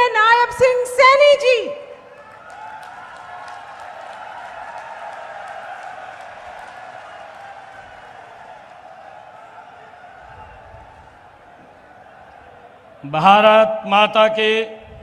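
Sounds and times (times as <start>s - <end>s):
crowd cheering and clapping: 2.0s - 13.1s.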